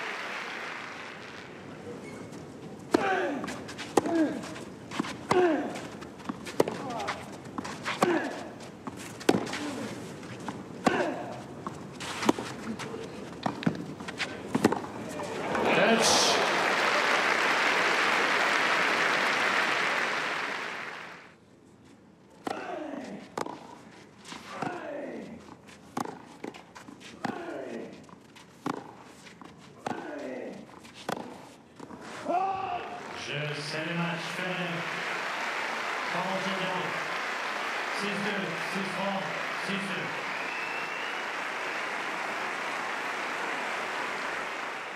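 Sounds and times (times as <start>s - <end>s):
crowd applause: 0.0s - 1.7s, 15.2s - 21.3s, 32.8s - 44.9s
racquet striking tennis ball: 9.2s - 9.6s, 31.1s - 31.4s.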